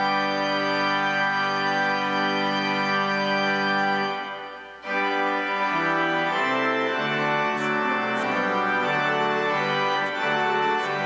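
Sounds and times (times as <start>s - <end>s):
church organ playing a hymn: 0.0s - 11.0s.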